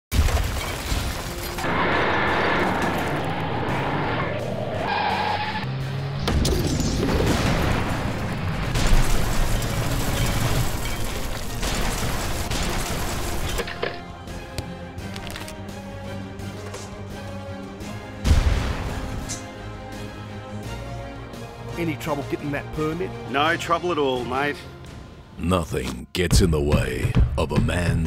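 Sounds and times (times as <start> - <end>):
booms crashes and shattering: 0.1 - 3.2, 6.2 - 13.7, 18.2 - 19.2
dramatic soundtrack music: 0.5 - 28.0.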